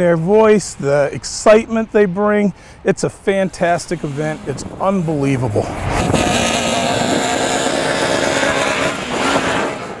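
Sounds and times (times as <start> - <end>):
race car engine driving by: 3.5 - 10.0.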